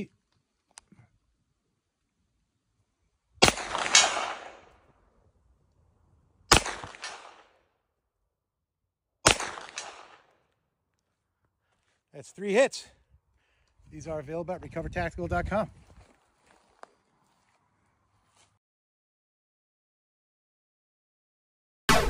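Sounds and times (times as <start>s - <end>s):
bullet hitting steel target: 3.4s - 4.7s
pistol gunshots echoing: 3.4s - 4.7s, 6.5s - 7.6s, 9.2s - 10.3s.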